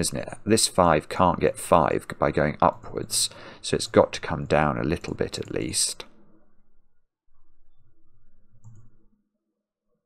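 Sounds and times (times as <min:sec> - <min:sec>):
computer mouse click: 0:08.6 - 0:09.0.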